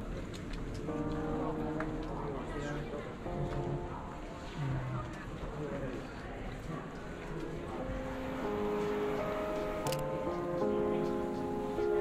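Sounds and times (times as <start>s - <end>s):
city street rumble: 0.0s - 12.0s
soft music with held notes: 0.0s - 12.0s.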